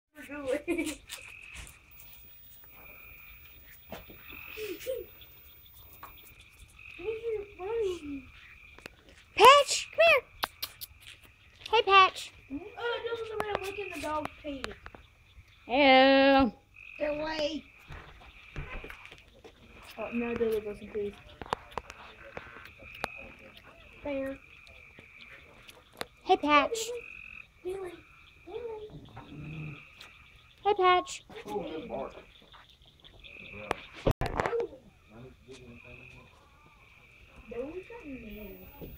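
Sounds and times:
dog growling: 28.9s - 30.0s.

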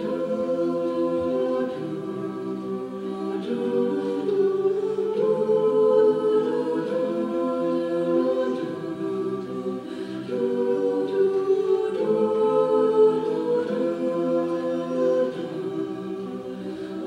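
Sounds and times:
a cappella group singing chords: 0.0s - 17.0s.

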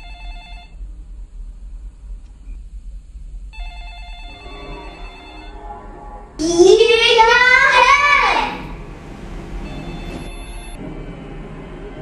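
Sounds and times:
high steady ringing tone: 0.0s - 0.9s, 3.5s - 6.2s, 8.9s - 10.8s
low wavering tones: 4.3s - 7.0s.

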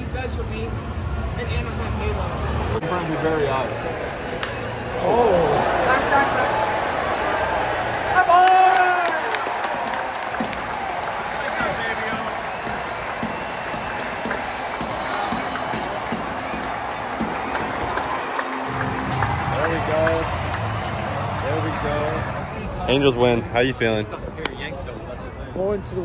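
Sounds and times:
stadium crowd cheering: 0.8s - 25.8s
fans shouting: 2.3s - 23.9s
music over stadium speakers: 11.4s - 22.4s.

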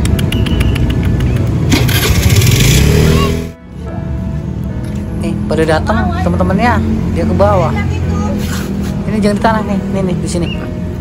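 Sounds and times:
low rumble of street traffic: 0.0s - 11.0s.

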